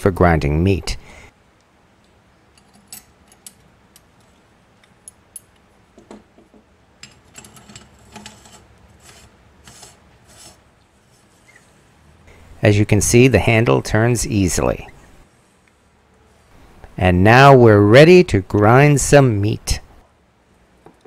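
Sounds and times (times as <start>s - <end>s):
metal parts clinking and scraping: 2.5s - 5.6s, 7.0s - 9.3s.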